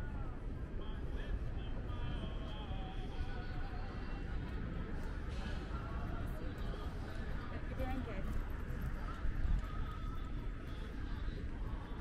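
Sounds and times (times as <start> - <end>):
low steady rumble: 0.0 - 12.0
passers-by talking: 3.4 - 11.8.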